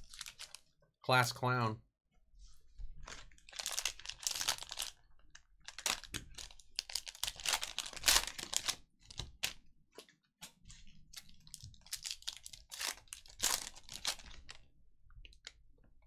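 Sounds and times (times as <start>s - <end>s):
plastic wrapper crinkling and tearing: 0.0s - 0.7s, 3.0s - 9.6s, 10.7s - 14.7s.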